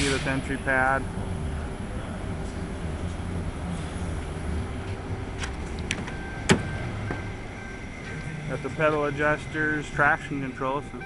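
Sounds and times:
car door clunk: 0:05.4 - 0:07.4.

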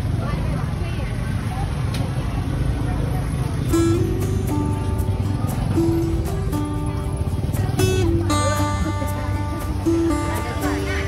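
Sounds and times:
faint voices: 0:00.0 - 0:11.0
low rumble of traffic: 0:00.0 - 0:11.0
background music: 0:04.0 - 0:11.0.

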